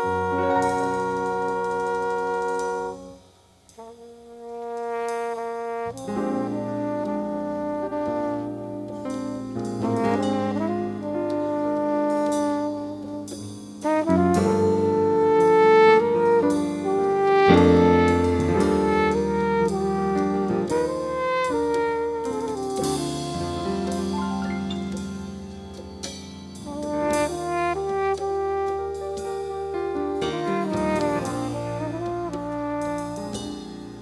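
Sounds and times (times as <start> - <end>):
flugelhorn lead: 0.0 - 34.0
jazz big band playing: 0.0 - 34.0.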